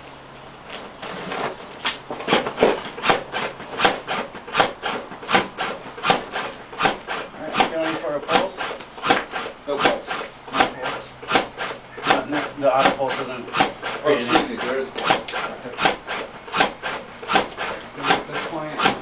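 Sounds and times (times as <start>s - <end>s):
mechanical rasping clacks: 2.2s - 19.0s.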